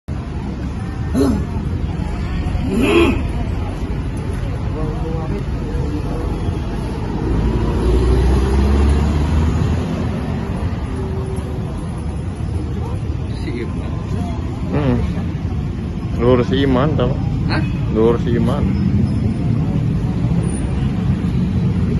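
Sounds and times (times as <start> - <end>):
busy road traffic: 0.0 - 21.9
vehicle passing close: 6.8 - 11.5.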